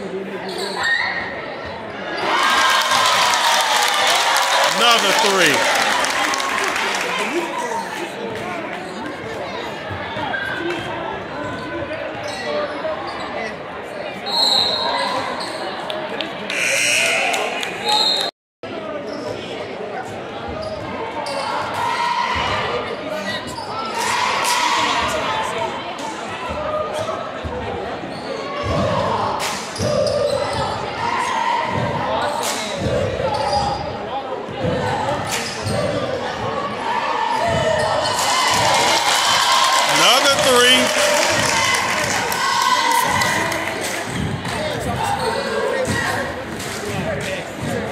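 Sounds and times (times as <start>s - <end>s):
crowd chatter: 0.0s - 47.9s.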